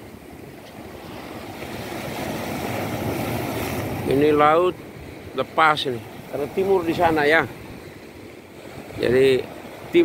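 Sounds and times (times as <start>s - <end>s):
waves breaking: 0.0s - 10.0s.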